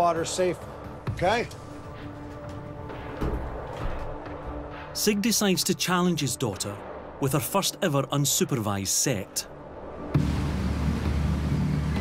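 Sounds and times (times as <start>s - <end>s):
boat engine low rumble: 9.7s - 12.0s.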